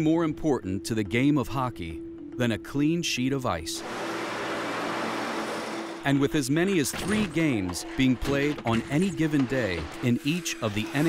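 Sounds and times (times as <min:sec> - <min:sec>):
ice resurfacer hissing: 0:03.8 - 0:06.0.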